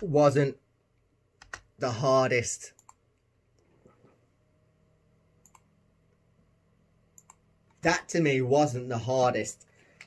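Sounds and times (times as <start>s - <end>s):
man speaking: 0.0s - 0.6s, 1.8s - 2.8s, 7.8s - 9.7s.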